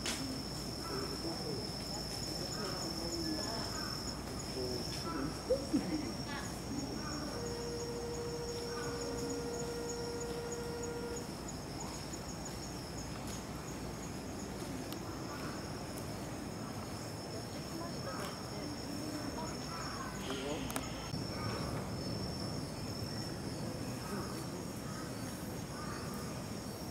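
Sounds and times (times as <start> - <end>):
high-pitched insect chorus: 0.0 - 26.9
pulsing insect trill: 0.0 - 26.9
low steady hum: 0.1 - 16.6.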